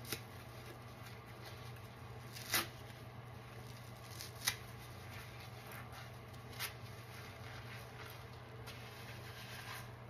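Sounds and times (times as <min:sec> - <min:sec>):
foam squishing and crackling: 0:00.0 - 0:10.0.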